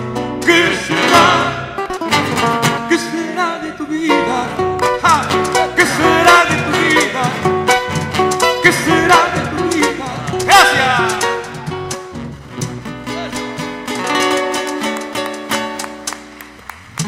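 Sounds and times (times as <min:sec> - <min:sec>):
acoustic guitars plucking: 0:00.0 - 0:17.0
men singing: 0:00.4 - 0:01.8, 0:02.9 - 0:07.8, 0:08.4 - 0:11.9.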